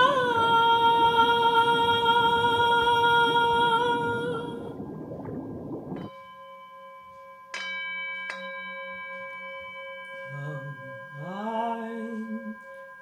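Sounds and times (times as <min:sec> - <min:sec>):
bell-like instrument ringing: 0:06.1 - 0:13.0.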